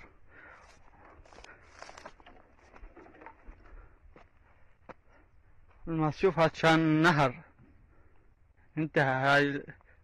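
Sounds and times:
faint outdoor ambience: 0:00.0 - 0:10.0.

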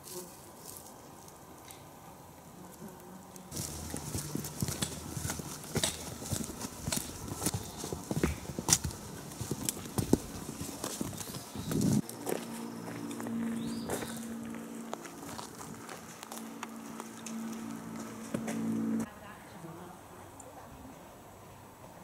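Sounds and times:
boots on stony dirt trail: 0:03.5 - 0:19.1.

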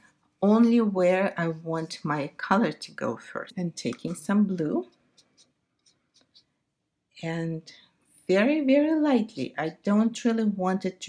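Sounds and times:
brush ticking on paper: 0:03.9 - 0:06.6.

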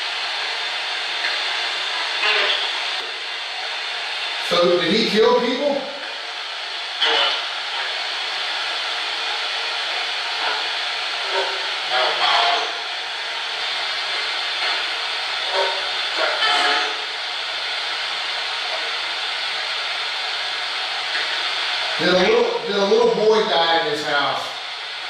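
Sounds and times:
radio static hiss: 0:00.0 - 0:25.0.

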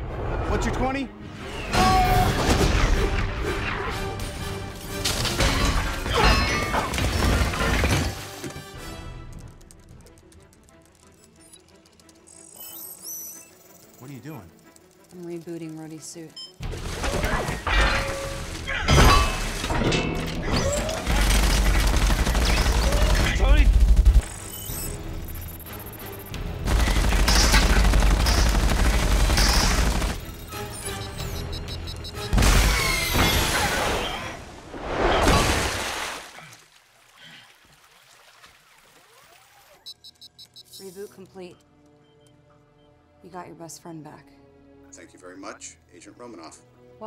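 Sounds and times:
battle soundtrack music: 0:00.1 - 0:09.9, 0:14.0 - 0:34.0
rapid gunfire: 0:21.0 - 0:24.3, 0:26.5 - 0:30.5.

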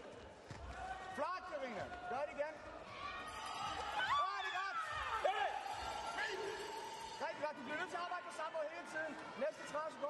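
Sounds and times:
voices shouting in sports hall: 0:00.6 - 0:10.0.

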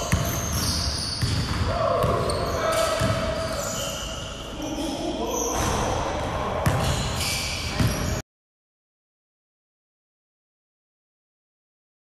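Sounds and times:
basketball bouncing on hardwood floor: 0:01.2 - 0:02.2.

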